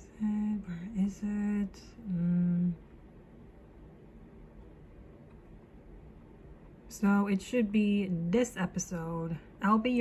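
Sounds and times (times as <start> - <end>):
low hiss and hum: 0.0 - 10.0.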